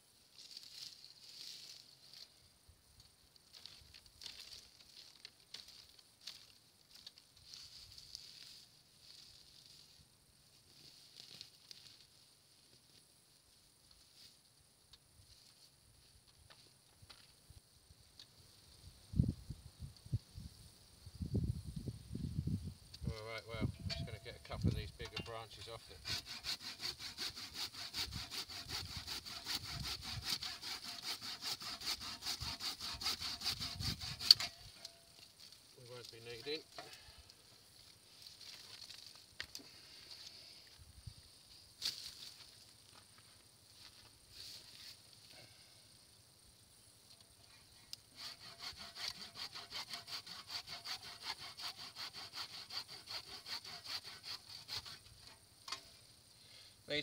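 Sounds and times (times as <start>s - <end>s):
hand saw cutting branches: 24.8s - 35.0s, 48.0s - 55.8s
branch cracking: 37.8s - 39.7s.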